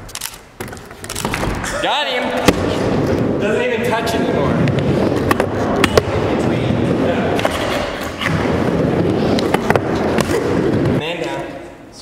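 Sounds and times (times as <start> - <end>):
skateboard wheels rumbling on ramp: 2.6 - 11.0.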